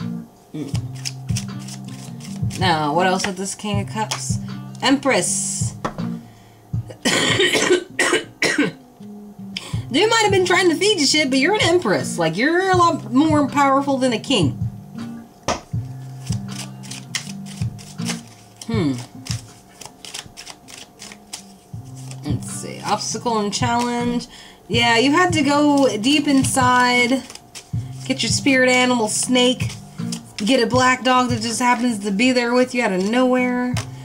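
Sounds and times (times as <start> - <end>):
quiet background music: 0.0 - 34.0
woman coughing: 6.9 - 8.8.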